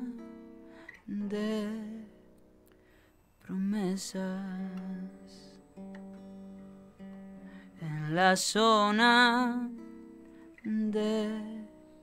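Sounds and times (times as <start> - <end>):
person singing: 0.0 - 2.4, 3.4 - 5.7, 7.3 - 12.0
acoustic guitar chords: 0.0 - 12.0.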